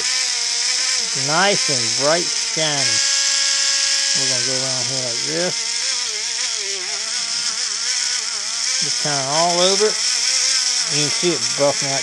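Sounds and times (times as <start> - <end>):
rotary tool high whine: 0.0 - 12.0.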